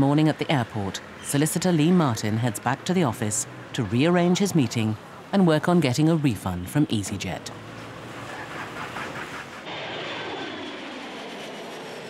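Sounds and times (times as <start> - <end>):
jet airliner taking off: 8.2 - 12.0.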